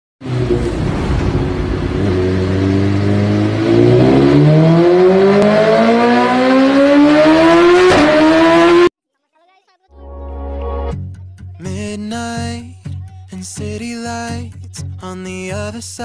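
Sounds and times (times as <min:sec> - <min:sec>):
engine revving rising pitch: 0:00.2 - 0:08.9.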